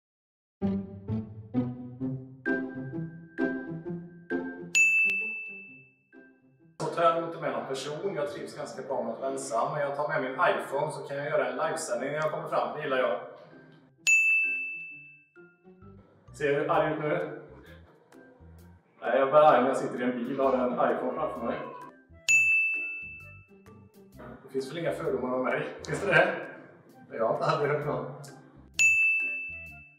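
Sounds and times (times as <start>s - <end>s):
light intro music: 0.6s - 9.8s, 10.4s - 29.9s
bright bell-like ding: 4.8s - 5.9s, 14.1s - 15.2s, 22.3s - 23.5s, 28.8s - 29.8s.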